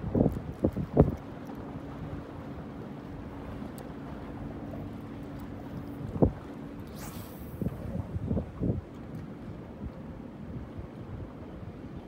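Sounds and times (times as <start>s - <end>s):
wind buffeting microphone: 0.0s - 2.8s, 5.6s - 12.0s.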